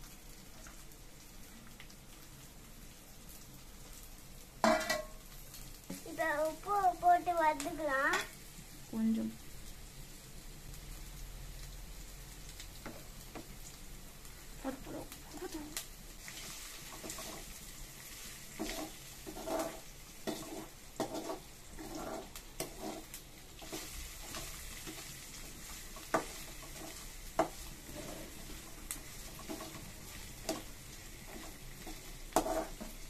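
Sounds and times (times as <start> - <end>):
vegetables sizzling in a pan: 0.0 - 33.0
spatula scraping a metal pan: 18.6 - 25.0, 26.0 - 28.6, 29.2 - 29.8, 30.4 - 33.0.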